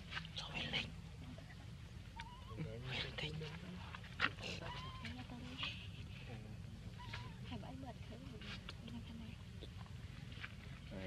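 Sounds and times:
baby monkey squeaks: 2.1s - 2.6s, 4.5s - 5.6s, 7.0s - 7.6s.

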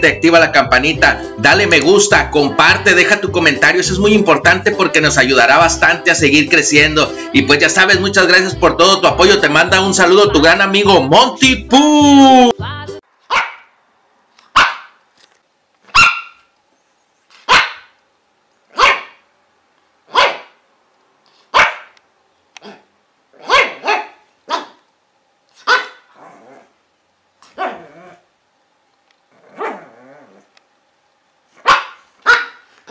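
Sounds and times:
dog barking: 13.3s - 13.7s, 14.5s - 15.0s, 15.9s - 16.5s, 17.4s - 18.0s, 18.7s - 19.2s, 20.1s - 20.6s, 21.5s - 22.0s, 22.6s - 24.8s, 25.6s - 26.1s, 27.5s - 28.0s, 29.6s - 29.9s, 31.6s - 32.9s.

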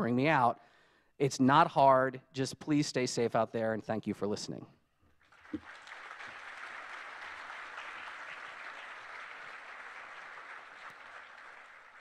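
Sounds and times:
audience applauding: 5.2s - 12.0s.

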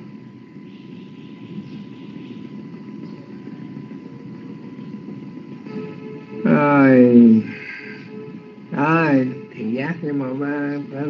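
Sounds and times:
low rumbling line noise: 0.0s - 11.0s
thin steady tone: 0.0s - 11.0s.

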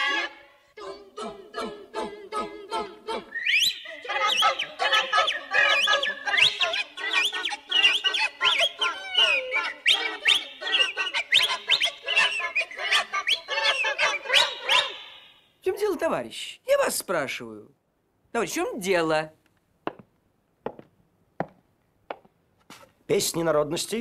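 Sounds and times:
women singing syllables: 0.0s - 15.2s
finger whistling: 3.3s - 15.5s
imitated bird and poultry calls: 3.4s - 15.2s.

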